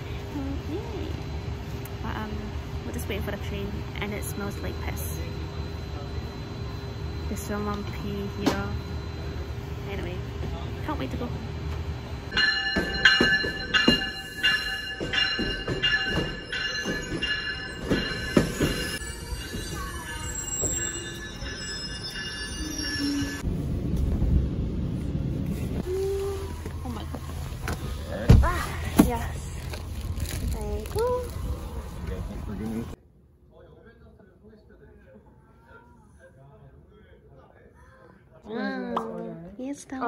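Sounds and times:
regular train clacking: 0:00.7 - 0:25.8
train wheels squealing: 0:16.2 - 0:23.4.

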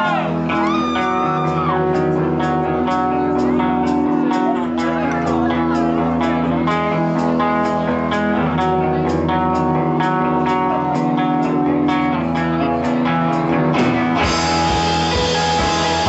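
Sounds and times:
electric guitar picking notes: 0:00.0 - 0:16.0
live psych-pop band playing: 0:00.0 - 0:16.0.

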